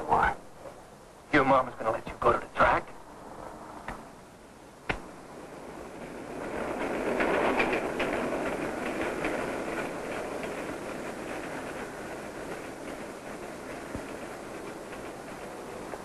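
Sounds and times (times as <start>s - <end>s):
subway train wheels clacking: 1.4s - 16.0s.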